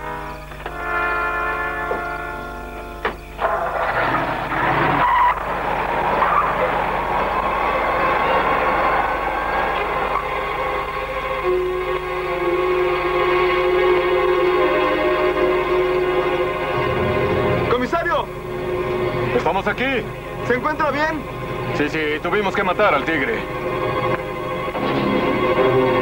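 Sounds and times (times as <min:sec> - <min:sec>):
full orchestra passage: 0:00.0 - 0:26.0
held brass chords: 0:00.0 - 0:26.0.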